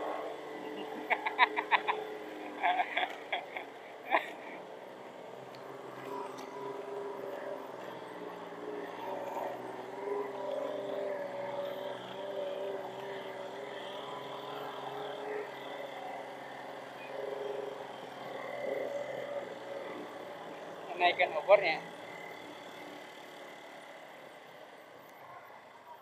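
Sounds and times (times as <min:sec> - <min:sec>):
vehicle engine running steadily: 0:00.0 - 0:26.0.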